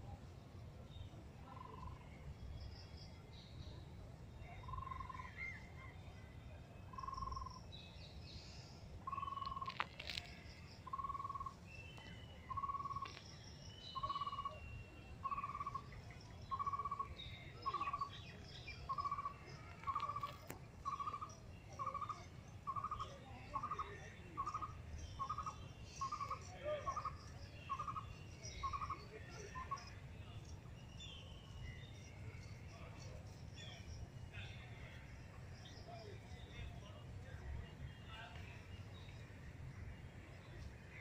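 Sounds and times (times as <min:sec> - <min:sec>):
faint bird chirps: 0:00.7 - 0:41.0.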